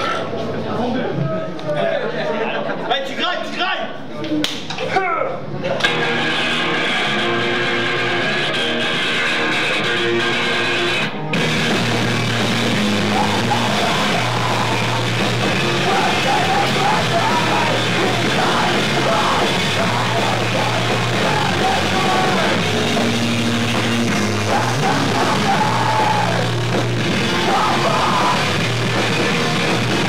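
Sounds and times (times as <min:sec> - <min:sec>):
distorted rock band playing: 0:05.8 - 0:30.0.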